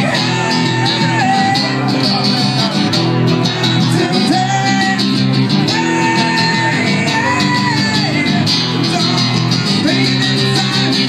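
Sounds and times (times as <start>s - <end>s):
man singing: 0.0s - 11.0s
strummed guitars: 0.0s - 11.0s.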